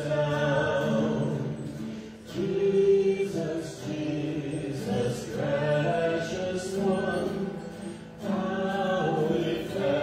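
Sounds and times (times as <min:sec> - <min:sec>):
acoustic guitar: 0:00.0 - 0:10.0
voices singing together: 0:00.0 - 0:10.0.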